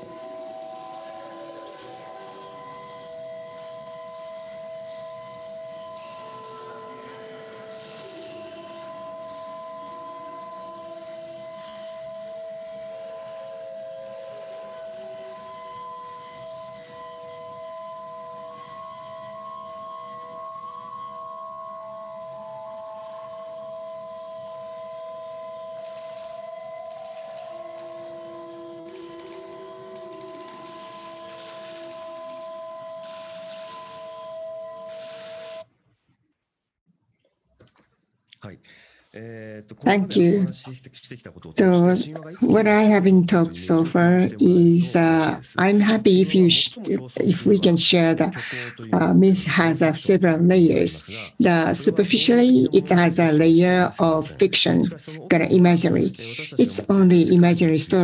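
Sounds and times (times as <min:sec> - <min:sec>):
ambient drone music: 0:00.0 - 0:35.6.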